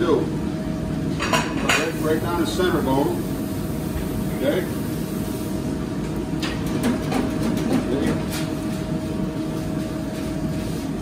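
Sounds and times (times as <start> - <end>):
kitchen machinery hum: 0.0 - 11.0.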